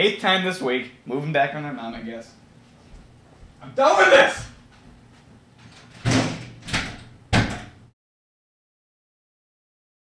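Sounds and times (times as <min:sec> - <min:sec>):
door slamming: 0:05.7 - 0:07.8.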